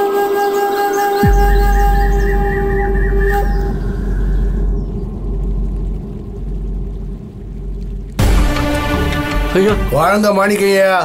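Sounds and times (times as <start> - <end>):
held musical tones: 0.0 - 10.8
deep steady rumble: 1.2 - 10.3.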